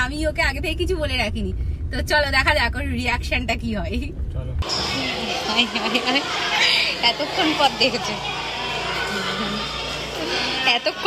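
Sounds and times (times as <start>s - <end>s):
schoolchildren chattering and calling out: 4.6s - 11.0s.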